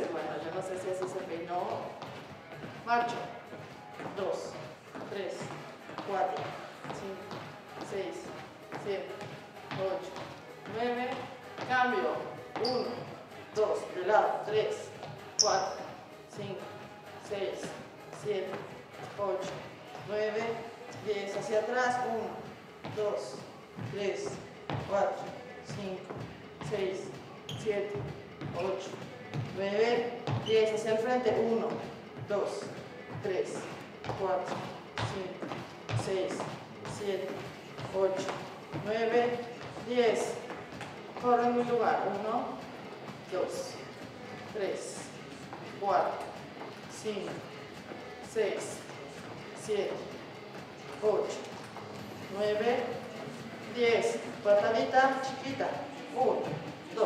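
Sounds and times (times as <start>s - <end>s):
footsteps on wooden floor: 0.4s - 13.2s, 17.6s - 41.8s.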